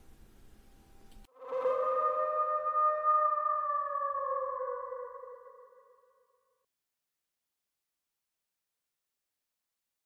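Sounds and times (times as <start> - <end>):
sustained electronic tone: 1.2 - 6.0.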